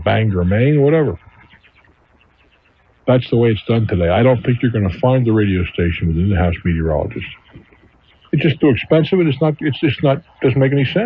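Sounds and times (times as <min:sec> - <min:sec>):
man talking on radio: 0:00.0 - 0:01.6, 0:03.0 - 0:11.0.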